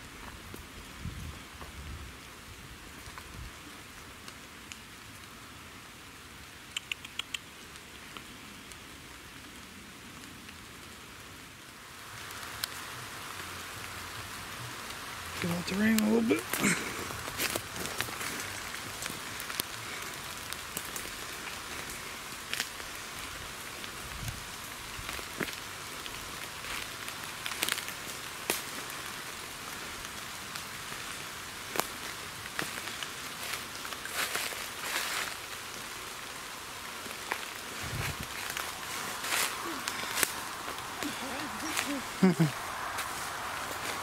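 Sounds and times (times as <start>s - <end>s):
steady hiss: 0.0s - 44.0s
footsteps crunching dry leaves: 15.4s - 44.0s.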